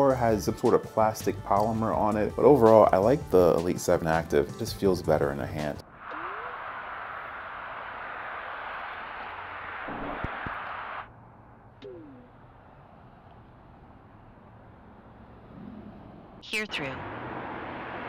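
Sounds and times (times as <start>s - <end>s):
brief falling tone: 6.0s - 7.5s, 11.8s - 12.3s
passing cars hissing: 6.2s - 16.4s, 17.0s - 18.0s.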